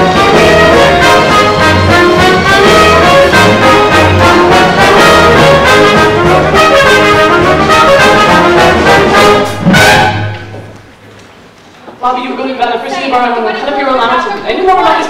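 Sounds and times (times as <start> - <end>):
pit orchestra playing dance number: 0.0 - 10.8.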